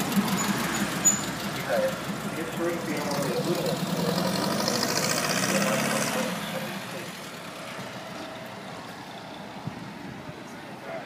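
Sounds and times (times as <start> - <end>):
street noise: 0.0 - 11.0
vehicle engine running close: 0.0 - 11.0.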